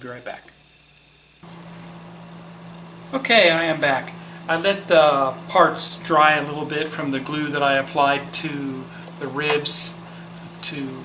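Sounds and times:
low electrical hum with hiss: 0:00.0 - 0:11.0.

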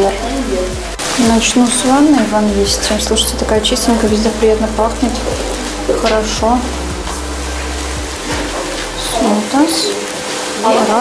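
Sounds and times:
low rumble: 0:00.0 - 0:09.4
steady hiss: 0:00.0 - 0:11.0.

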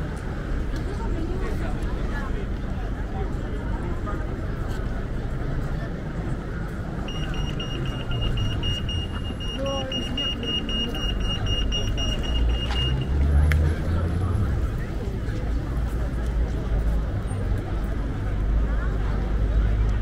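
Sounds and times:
passers-by talking: 0:00.0 - 0:20.0
traffic rumble: 0:00.0 - 0:20.0
crossing signal bleeping: 0:07.0 - 0:13.2.

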